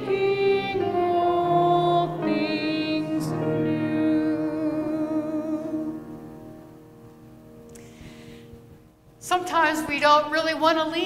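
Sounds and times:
congregation singing a hymn: 0.0 - 6.6.

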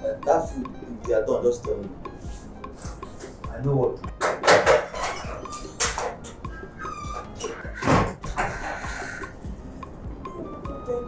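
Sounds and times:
household objects clattering: 4.2 - 6.4.

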